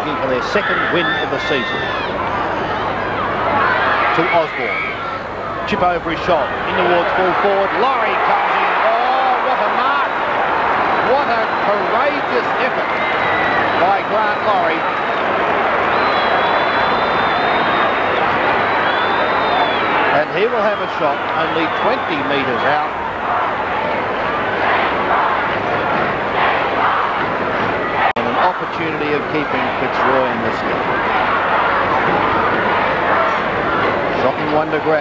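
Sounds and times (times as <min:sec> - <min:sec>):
crowd roaring and cheering: 0:00.0 - 0:35.0.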